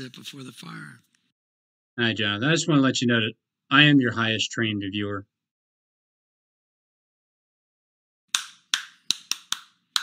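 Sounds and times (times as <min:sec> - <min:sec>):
person clapping hands: 0:08.3 - 0:10.0.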